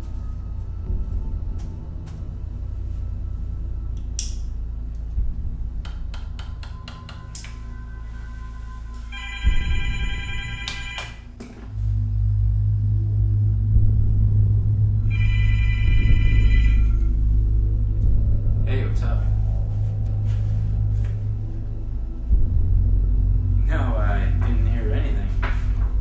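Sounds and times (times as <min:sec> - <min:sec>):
dark film music: 0:00.0 - 0:26.0
low bass drone: 0:00.0 - 0:26.0
cordless telephone ringing: 0:09.1 - 0:11.2.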